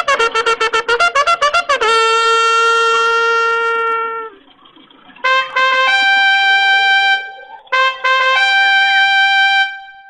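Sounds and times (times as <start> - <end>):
trumpet long note: 0.0 - 4.5, 5.2 - 10.0.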